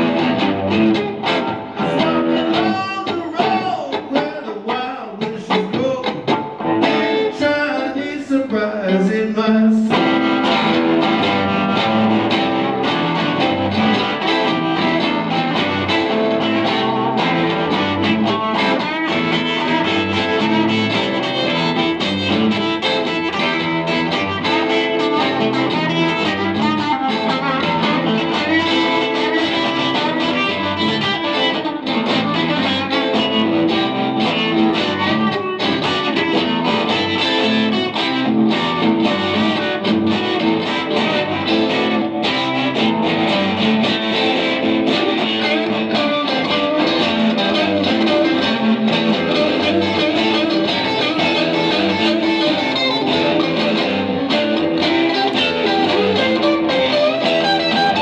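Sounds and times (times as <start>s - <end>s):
two guitars playing duet: 0.0s - 58.0s.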